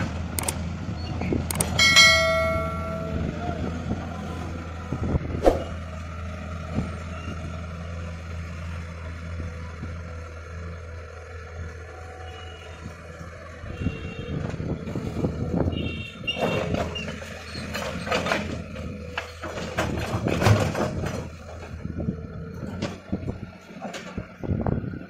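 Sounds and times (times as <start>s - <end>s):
diesel engines running: 0.0s - 25.0s
excavator bucket clanking: 16.3s - 21.7s.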